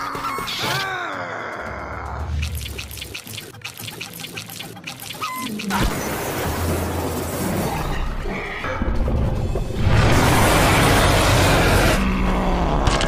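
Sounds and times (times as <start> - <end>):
background music: 0.0 - 12.9
quick clicks: 1.6 - 5.8.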